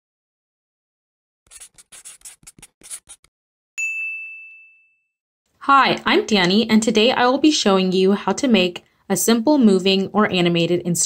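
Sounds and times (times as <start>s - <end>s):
pen scratching: 1.5s - 3.3s
bright ding: 3.8s - 5.2s.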